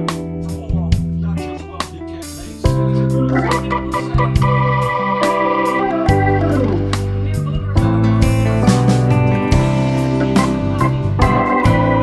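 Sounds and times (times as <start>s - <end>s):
keyboard chords over steady beat: 0.0s - 12.0s.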